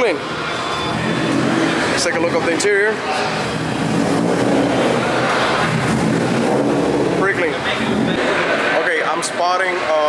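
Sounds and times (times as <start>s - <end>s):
vehicle engine idling: 0.9s - 8.6s.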